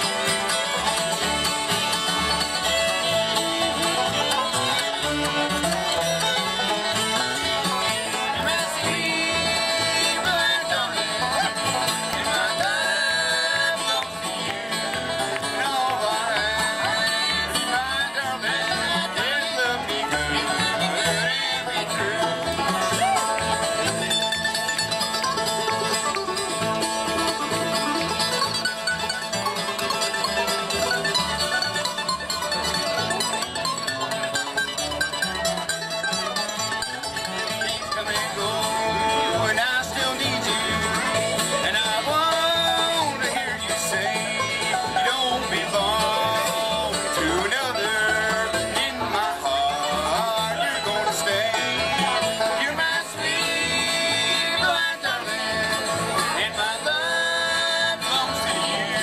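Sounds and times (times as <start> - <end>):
acoustic guitar: 0.0 - 59.0
banjo: 0.0 - 59.0
fiddle: 0.0 - 59.0
mandolin: 0.0 - 59.0.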